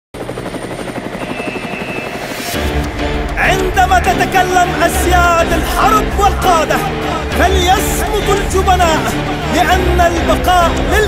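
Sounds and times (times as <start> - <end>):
helicopter rotor chop: 0.2 - 11.0.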